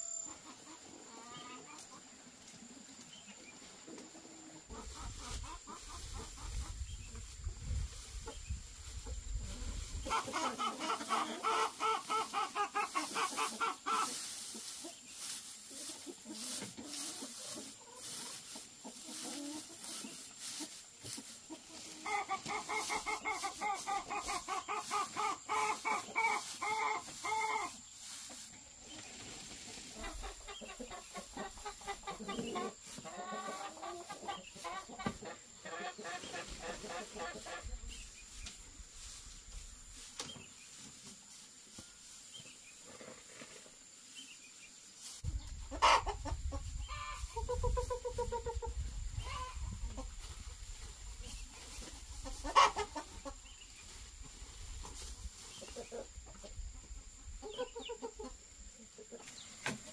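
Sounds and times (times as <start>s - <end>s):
chickens clucking: 0.0s - 59.9s.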